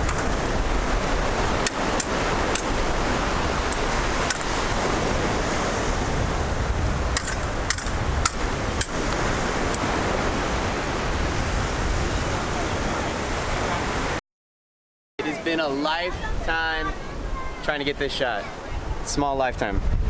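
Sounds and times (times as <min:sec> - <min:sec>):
surf washing up beach: 0:00.0 - 0:14.2, 0:15.2 - 0:19.9.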